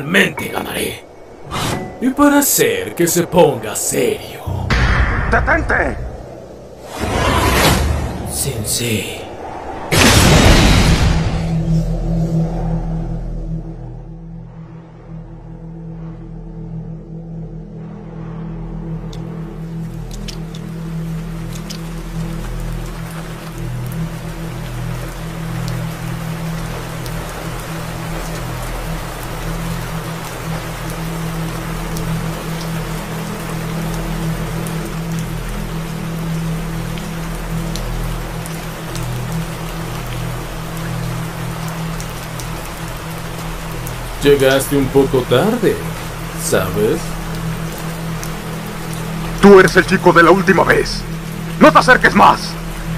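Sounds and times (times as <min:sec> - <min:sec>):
steady rain falling: 0:00.0 - 0:52.9
low background music: 0:13.8 - 0:52.9.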